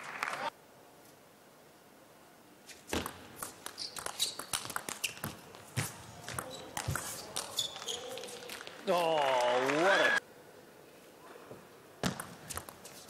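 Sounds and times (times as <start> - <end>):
shoes squeaking on floor: 3.7 - 8.4.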